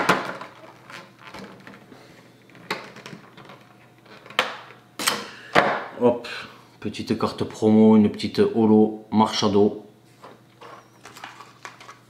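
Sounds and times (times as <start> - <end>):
plastic wrapping crinkling and tearing: 0.0 - 1.8.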